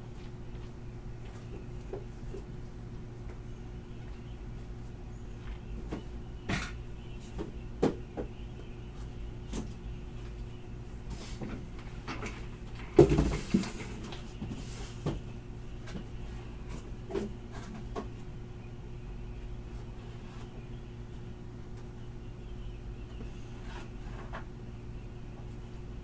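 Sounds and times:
electrical hum: 0.0s - 26.0s
objects knocking and clattering: 12.0s - 14.1s.

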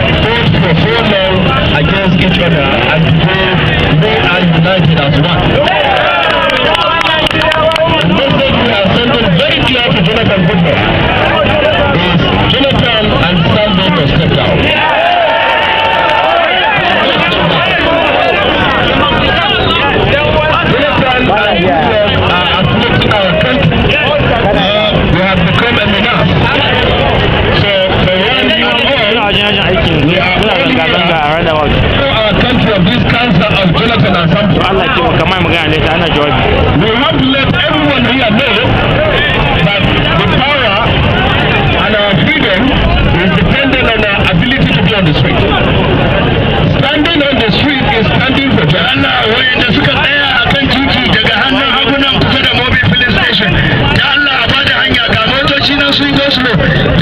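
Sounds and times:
voices talking over one another: 0.0s - 57.0s.

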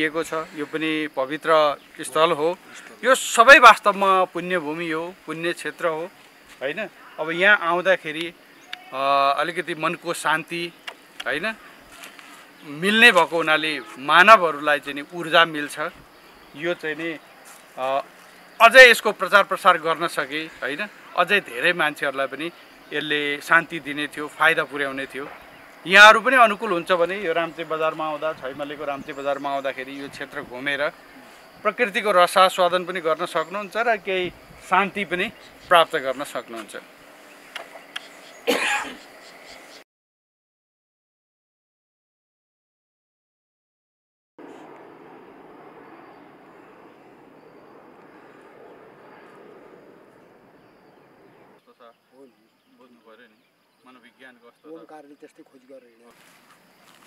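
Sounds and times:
man speaking: 0.0s - 10.7s, 12.6s - 16.0s, 17.8s - 25.3s, 25.9s - 31.0s
faint outdoor background: 0.0s - 39.9s, 44.4s - 57.0s
man clearing throat: 38.5s - 39.0s.

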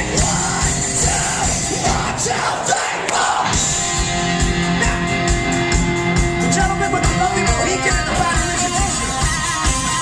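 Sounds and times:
bass guitar: 0.0s - 2.2s, 3.4s - 10.0s
distorted electric guitars: 0.0s - 2.3s, 3.4s - 10.0s.

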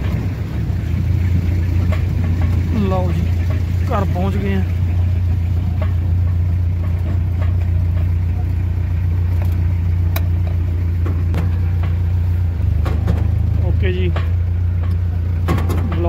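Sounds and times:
light rattles and clicks: 0.0s - 16.0s
tractor diesel engine running: 0.0s - 16.0s.

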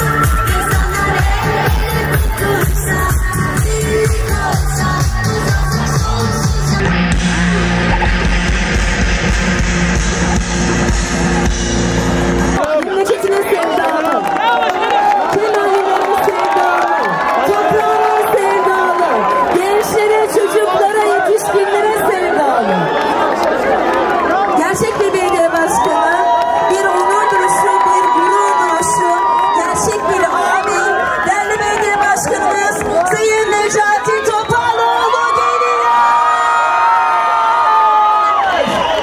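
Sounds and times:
crowd clapping: 0.0s - 6.5s, 10.2s - 39.0s
electronic dance music: 0.0s - 14.1s
crowd shouting and cheering: 0.0s - 39.0s.

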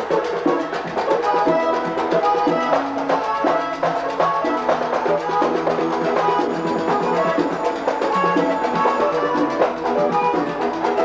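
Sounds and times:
button accordion melody: 0.0s - 11.0s
drum and percussion strokes: 0.0s - 11.0s.

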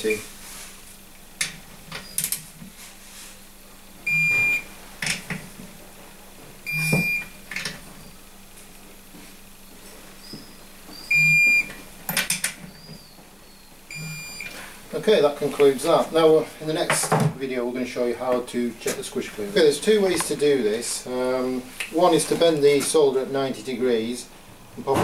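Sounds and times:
torque wrench beeping: 4.0s - 4.7s, 6.6s - 7.5s, 11.0s - 11.8s, 13.9s - 14.5s.

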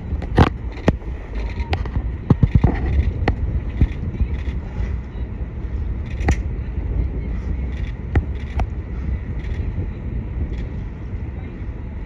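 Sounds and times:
boat engine hum: 0.0s - 12.0s
wind on microphone: 0.0s - 12.0s.

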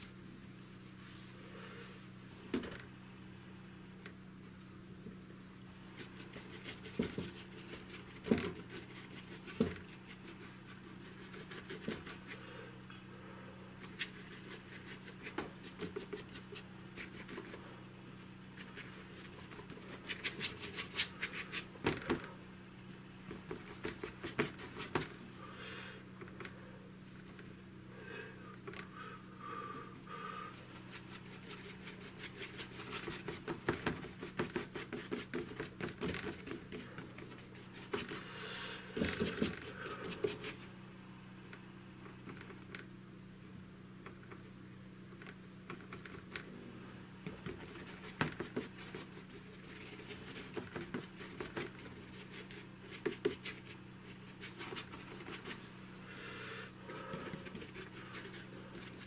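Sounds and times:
low steady hum: 0.0s - 59.0s
brush scrubbing paint on board: 5.9s - 12.4s, 13.8s - 17.7s, 18.4s - 22.2s, 23.2s - 25.2s, 30.1s - 40.7s, 47.2s - 55.8s, 56.8s - 59.0s.

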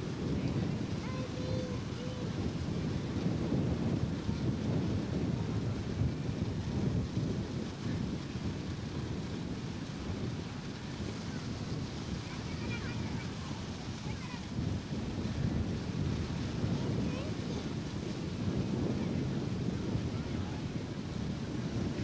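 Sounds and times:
wind buffeting microphone: 0.0s - 22.0s
faint distant voices: 9.9s - 18.2s, 18.9s - 22.0s.

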